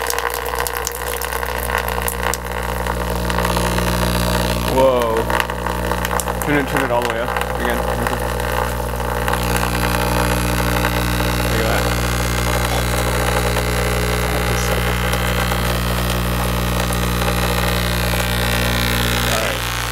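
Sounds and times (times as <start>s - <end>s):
speaker low distorted buzz: 0.0s - 19.9s.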